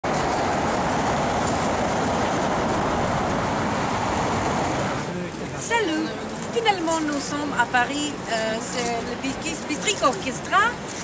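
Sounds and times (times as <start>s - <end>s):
dense road traffic: 0.0s - 11.0s.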